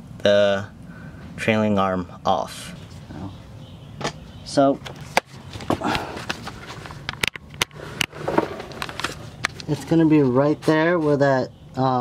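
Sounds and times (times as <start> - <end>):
camera handling clicks and knocks: 4.8 - 9.7
rubbing and shuffling: 4.8 - 11.4.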